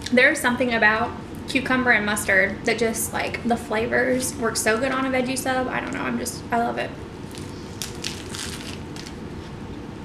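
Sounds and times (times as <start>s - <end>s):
chewing crunchy sandwich: 7.3s - 9.6s.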